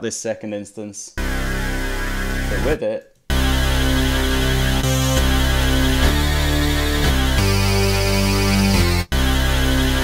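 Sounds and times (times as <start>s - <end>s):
bass synth sustained notes: 1.2s - 10.0s.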